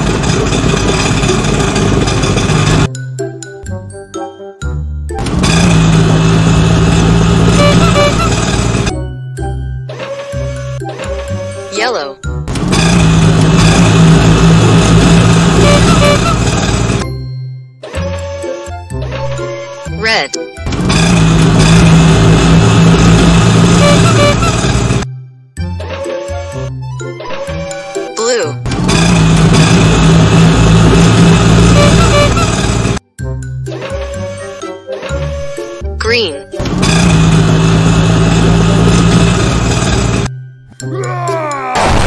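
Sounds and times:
small vehicle engine running: 0.0 - 2.9, 5.2 - 17.2, 17.8 - 25.1, 25.7 - 33.0, 33.6 - 40.3
music: 2.9 - 5.8, 7.6 - 12.8, 15.6 - 21.7, 23.8 - 28.9, 31.8 - 37.0, 40.2 - 42.0.

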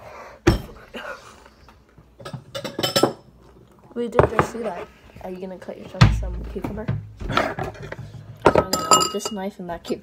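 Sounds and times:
bowl and cutlery clinking: 2.2 - 3.3, 7.6 - 9.4.

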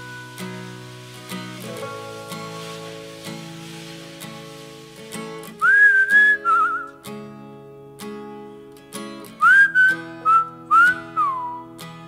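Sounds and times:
strummed acoustic guitars: 0.0 - 12.0
person whistling a melody: 5.6 - 7.0, 9.4 - 11.8.

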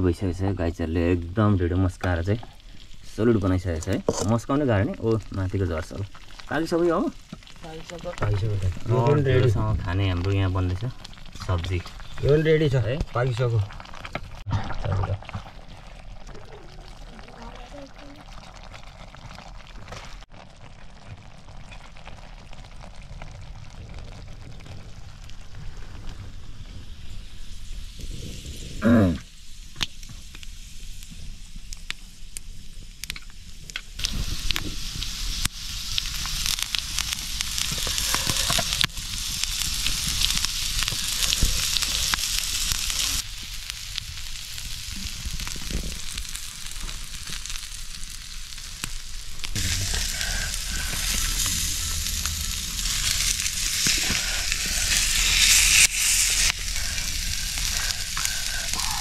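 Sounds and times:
meat sizzling on hot stone: 0.0 - 59.0
wood fire crackles: 0.0 - 59.0.

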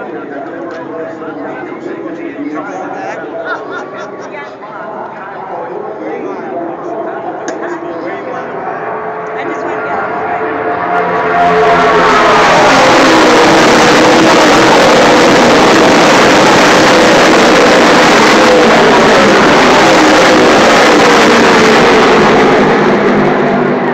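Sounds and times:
race cars passing at speed: 0.0 - 23.9.

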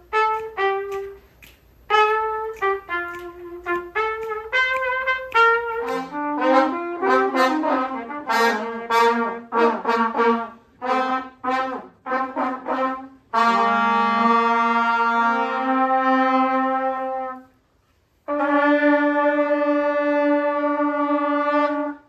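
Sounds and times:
several trumpets playing together: 0.0 - 1.3, 1.9 - 17.6, 18.2 - 22.0
trumpet playing short phrases: 0.0 - 1.3, 1.9 - 17.6, 18.2 - 22.0.

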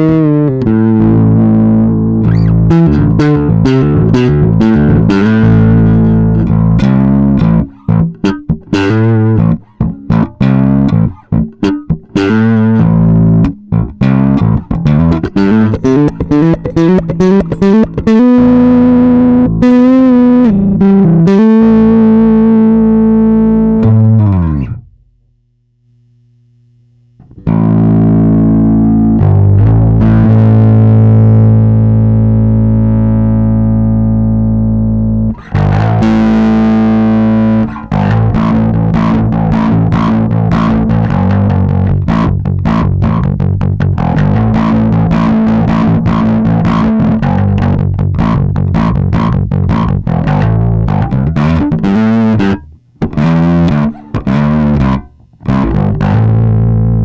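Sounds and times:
distorted electric bass guitar: 0.0 - 57.0.

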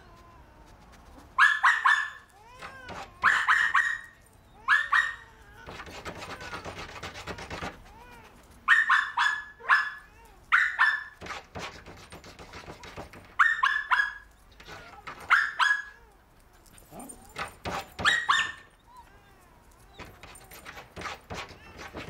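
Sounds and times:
small dog barking: 1.4 - 2.3, 3.2 - 5.3, 8.6 - 11.2, 13.4 - 14.3, 15.2 - 16.1, 18.0 - 18.7.

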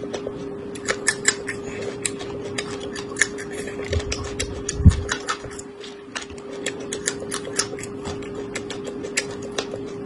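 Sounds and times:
crunchy chewing: 0.0 - 10.0
steady hum: 0.0 - 10.0.

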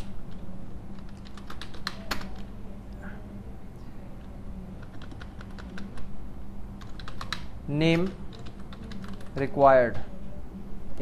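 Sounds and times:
steady low hum: 0.0 - 11.0
keyboard keys clicking: 1.0 - 2.5, 4.8 - 6.1, 6.8 - 9.5.

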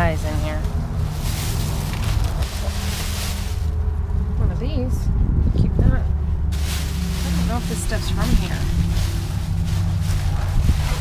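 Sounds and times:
plastic bag rustling and crinkling: 0.0 - 3.9, 6.5 - 11.0
steady low rumble: 0.0 - 11.0.

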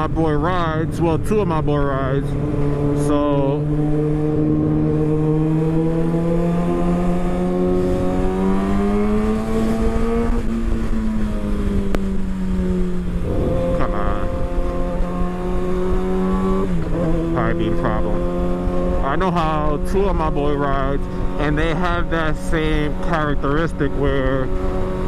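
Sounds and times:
motorcycle engine revving: 0.0 - 25.0
wind noise: 7.1 - 19.8.

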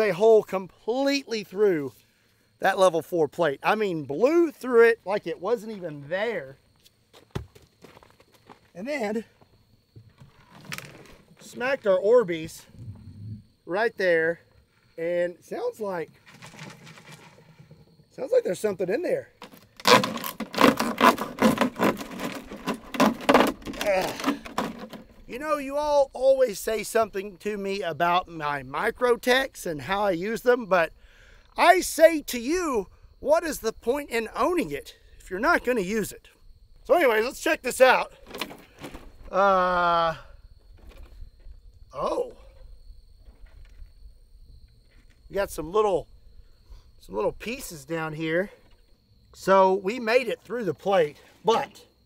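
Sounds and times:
wind rumble on microphone: 12.6 - 13.6
knife cutting plastic jug: 19.8 - 25.0.

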